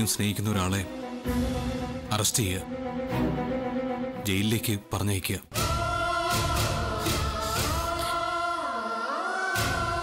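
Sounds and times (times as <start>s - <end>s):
choir-like voices holding chord: 5.5s - 10.0s.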